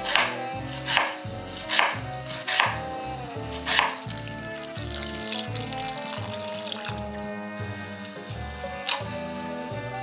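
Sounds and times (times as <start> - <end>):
knife slicing onion on board: 0.0 - 2.9, 3.5 - 4.1.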